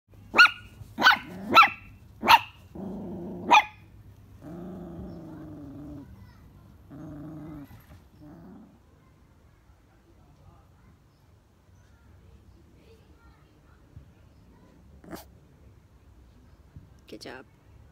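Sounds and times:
puppy yapping: 0.3s - 3.9s
puppy growling: 1.0s - 9.0s, 15.0s - 15.4s.

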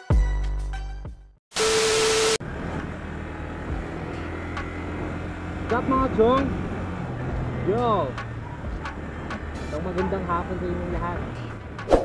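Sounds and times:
motorcycle engine running: 2.9s - 11.2s.

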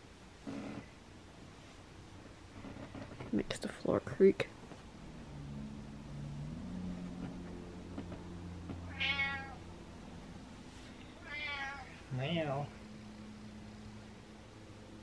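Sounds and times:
cat meowing: 8.8s - 9.6s, 11.2s - 12.0s.

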